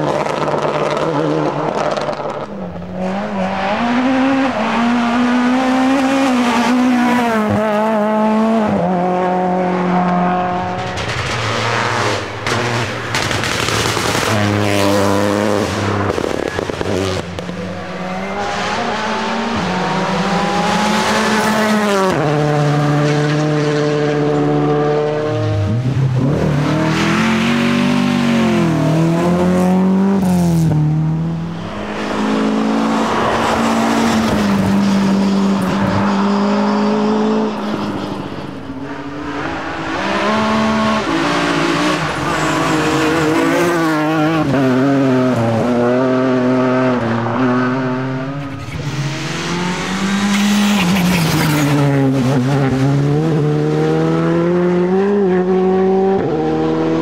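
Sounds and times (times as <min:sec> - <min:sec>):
rally car engines revving: 0:00.0 - 0:57.0.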